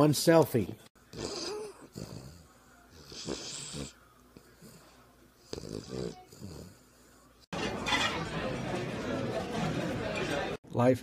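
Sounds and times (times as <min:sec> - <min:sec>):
dog snoring: 0:01.1 - 0:07.2.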